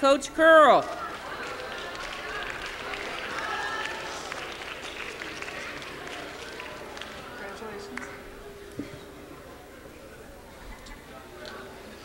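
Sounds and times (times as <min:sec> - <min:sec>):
audience clapping: 0:00.6 - 0:08.2
murmuring voices: 0:00.8 - 0:12.0.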